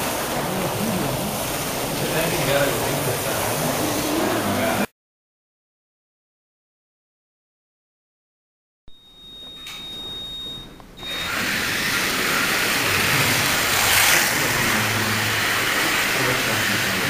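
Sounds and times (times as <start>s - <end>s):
high electronic beep: 8.9s - 11.4s
slot car motors whining: 11.0s - 17.0s.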